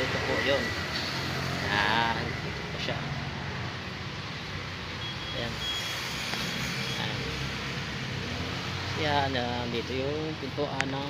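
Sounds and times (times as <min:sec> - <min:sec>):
traffic rumble: 0:00.0 - 0:11.0
high beeping tone: 0:05.0 - 0:07.5.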